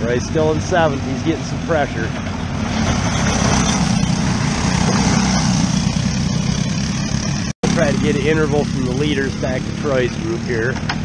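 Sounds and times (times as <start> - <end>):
racing kart engines running hard: 0.0 - 11.0.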